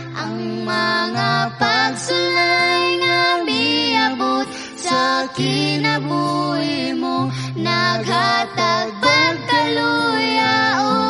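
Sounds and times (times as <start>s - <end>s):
high voice singing: 0.0s - 11.0s
instrumental backing: 0.0s - 11.0s.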